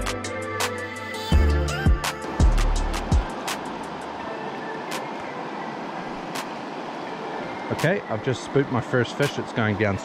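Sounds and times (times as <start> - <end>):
background music: 0.0 - 10.0
river running over stones: 1.8 - 10.0.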